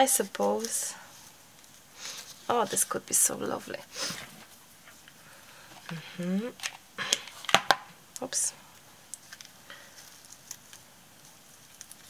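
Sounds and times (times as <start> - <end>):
paper rustling and ticking: 0.1 - 0.9, 9.1 - 12.0.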